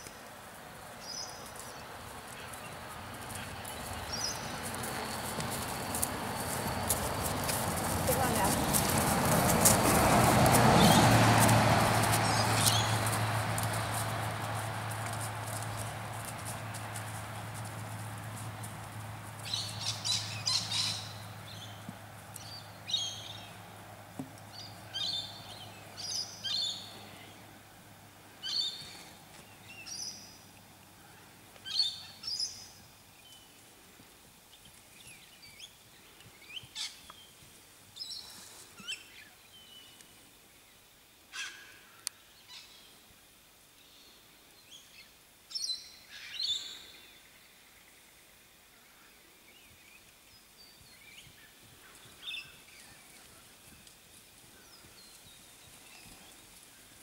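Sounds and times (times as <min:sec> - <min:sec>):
birds calling: 0:01.0 - 0:16.6, 0:19.4 - 0:23.6.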